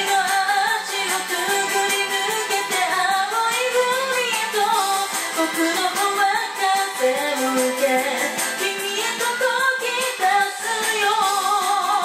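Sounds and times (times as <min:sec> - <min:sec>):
pop backing track: 0:00.0 - 0:12.0
woman singing: 0:00.0 - 0:12.0.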